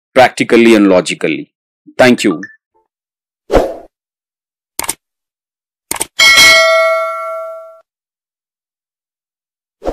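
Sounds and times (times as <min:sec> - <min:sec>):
sharp mouse clicks: 0:04.8 - 0:05.0, 0:05.9 - 0:06.1
bright bell chime: 0:06.2 - 0:07.8.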